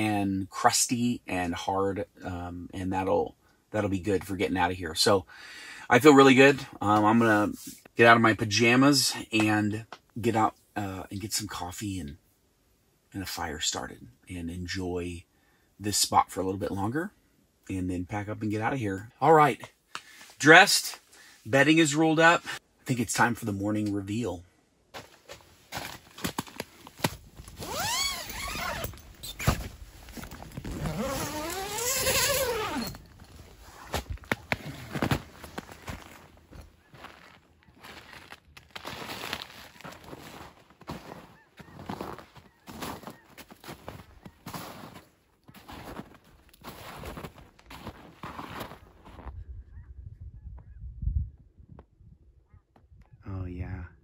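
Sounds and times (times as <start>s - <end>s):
footsteps crunching in snow: 25.0s - 49.3s
tent zipper unzipping: 27.4s - 35.4s.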